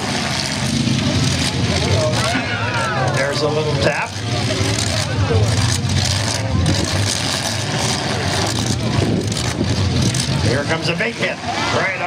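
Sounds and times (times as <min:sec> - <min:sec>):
trucks knocking together: 0:00.0 - 0:11.8
truck engines revving: 0:00.0 - 0:12.0.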